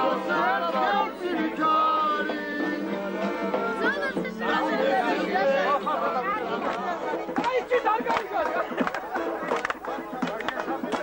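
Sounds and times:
music: 0.0 - 11.0
voices talking over one another: 0.0 - 11.0.

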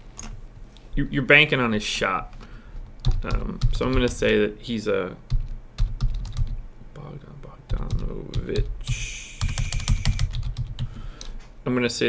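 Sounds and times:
computer keyboard typing: 2.8 - 4.4, 5.3 - 6.6, 7.7 - 10.9.

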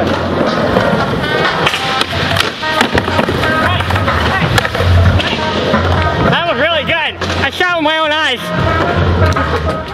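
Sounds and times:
skateboard clacks: 0.0 - 6.3, 8.5 - 9.9
music: 0.0 - 9.9
skateboard wheels rolling: 0.0 - 9.9.

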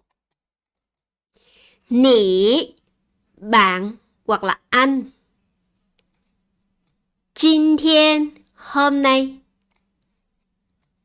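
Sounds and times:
faint steady hum: 1.4 - 11.0.

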